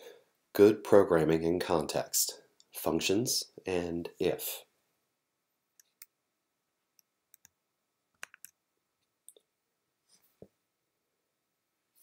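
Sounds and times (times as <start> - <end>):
keyboard and mouse clicks: 7.0 - 7.6, 8.2 - 8.6.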